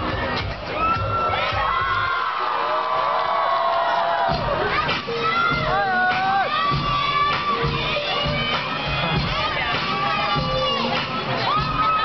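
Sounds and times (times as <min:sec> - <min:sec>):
crowd screaming and cheering: 0:00.0 - 0:12.0
dance music with thumping beat: 0:04.3 - 0:12.0.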